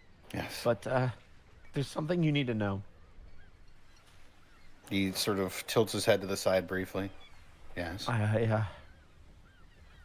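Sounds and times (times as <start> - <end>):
man speaking: 0.3 - 2.9, 4.9 - 8.8.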